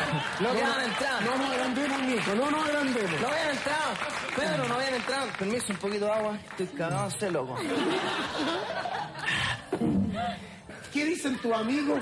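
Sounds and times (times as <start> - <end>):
studio audience laughing: 0.0 - 2.2, 7.5 - 9.6, 11.0 - 12.0.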